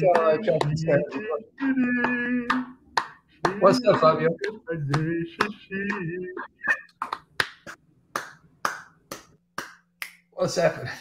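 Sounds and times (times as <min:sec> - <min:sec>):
sharp hand claps: 0:02.0 - 0:03.6, 0:04.4 - 0:06.1, 0:06.7 - 0:10.3.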